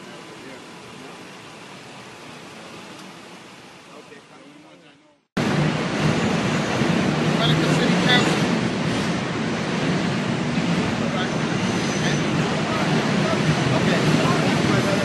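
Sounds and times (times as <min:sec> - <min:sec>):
traffic rushing hiss: 0:05.4 - 0:15.0.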